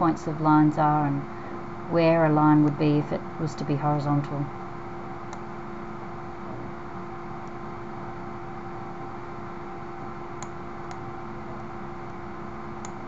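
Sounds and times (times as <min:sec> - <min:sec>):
electrical hum and hiss: 0:00.0 - 0:13.0
computer mouse clicks: 0:12.8 - 0:13.0.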